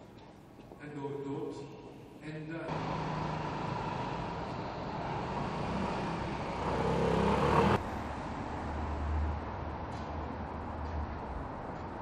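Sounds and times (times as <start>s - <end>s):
motor vehicle running: 2.7s - 7.9s.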